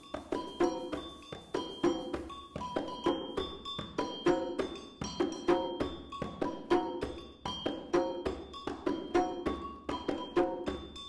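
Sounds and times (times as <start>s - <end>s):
hand drum rhythm: 0.0s - 11.0s.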